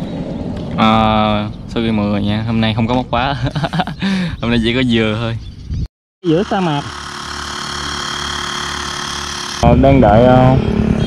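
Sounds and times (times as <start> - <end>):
electric tyre inflator humming: 6.2 - 9.8.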